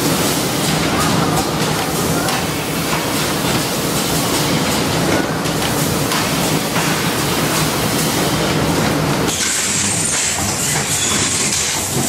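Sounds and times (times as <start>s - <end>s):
machinery clatter and hum: 0.0s - 12.0s.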